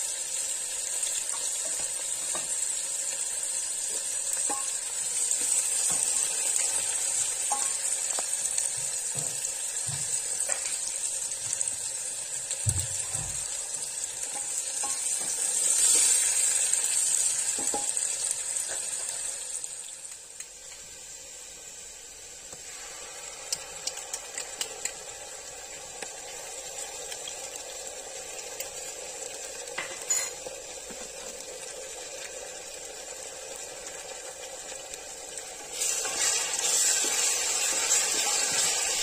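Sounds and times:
onions sizzling in hot oil: 0.0s - 39.0s.

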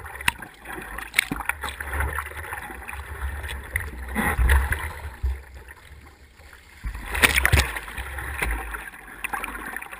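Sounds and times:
kayak paddle strokes: 0.0s - 9.5s
water splashing and lapping: 0.0s - 9.9s.

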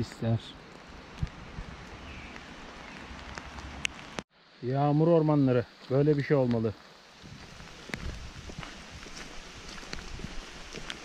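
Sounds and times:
rain falling on woodland: 0.0s - 11.0s.

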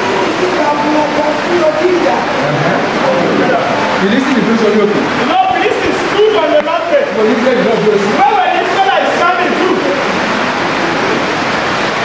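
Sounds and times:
voices talking and calling out: 0.0s - 11.8s
dense noisy din: 0.0s - 12.0s.

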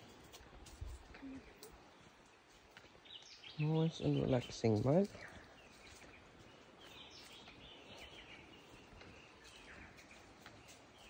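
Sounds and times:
distant bird calls: 1.2s - 11.0s.

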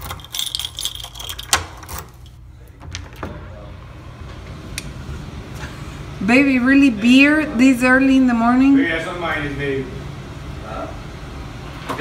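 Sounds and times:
keys jangling: 0.0s - 2.4s.

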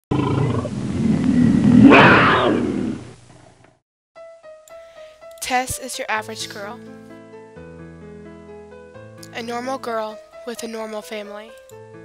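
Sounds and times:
dragon roar: 0.1s - 3.2s.

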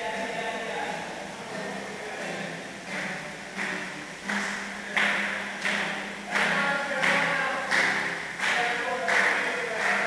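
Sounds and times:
rhythmic drum beats: 0.0s - 10.0s.

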